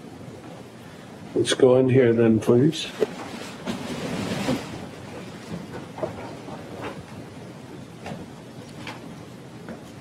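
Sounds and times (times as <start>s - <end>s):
rustling: 2.9s - 7.2s.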